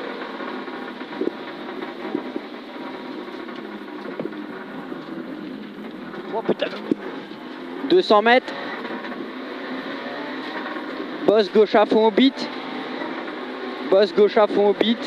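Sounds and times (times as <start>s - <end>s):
car engine revving hard: 0.0s - 15.0s
tyre noise on wet road: 0.0s - 15.0s.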